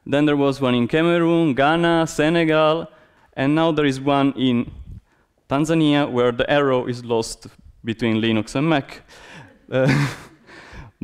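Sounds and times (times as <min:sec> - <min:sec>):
faint breathing: 0:09.1 - 0:11.0.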